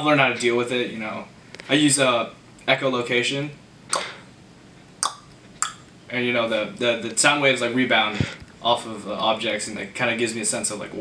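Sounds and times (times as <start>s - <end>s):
sharp tongue clicks: 3.9s - 4.2s, 5.0s - 5.9s.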